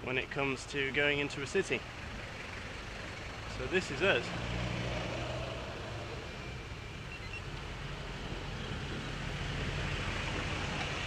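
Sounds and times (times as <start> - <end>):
car engines idling: 0.0 - 4.4
road noise: 0.0 - 11.0.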